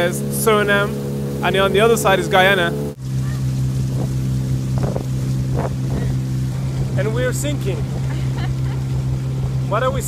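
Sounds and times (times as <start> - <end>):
outboard motor humming: 0.0 - 10.0
water splashes from bailing: 0.0 - 10.0.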